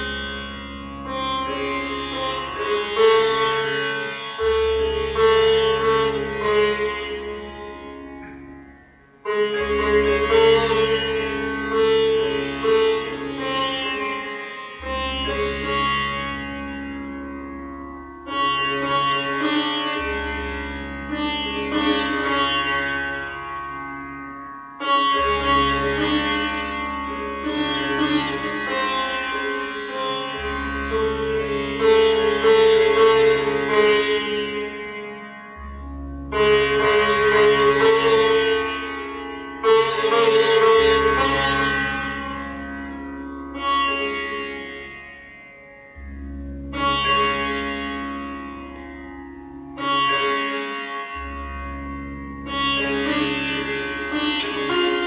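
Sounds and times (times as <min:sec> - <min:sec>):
sitar playing: 0:00.0 - 0:55.0.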